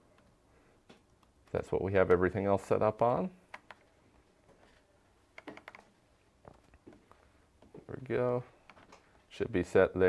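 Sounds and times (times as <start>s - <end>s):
faint laptop keystrokes: 2.9s - 3.9s, 5.3s - 6.9s.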